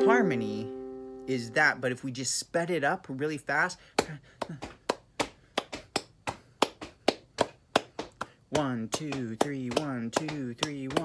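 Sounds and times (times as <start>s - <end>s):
hand claps in quick rhythm: 4.0s - 11.0s.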